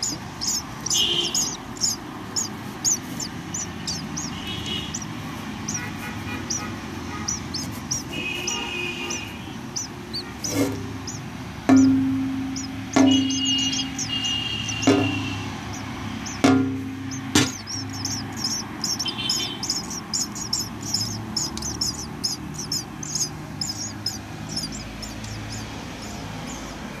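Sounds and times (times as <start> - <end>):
thin high chirps: 0.0 - 26.7
nestling birds cheeping: 0.0 - 27.0
sharp ringing knocks: 10.4 - 25.6.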